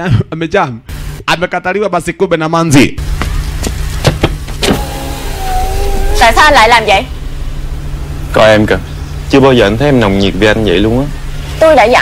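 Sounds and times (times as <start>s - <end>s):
knuckles knocking on car window: 3.2s - 4.6s
power window motor whining: 4.5s - 7.0s.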